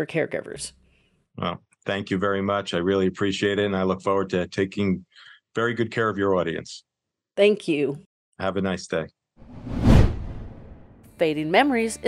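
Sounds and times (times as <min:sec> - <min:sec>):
transition whoosh: 0:09.4 - 0:11.1.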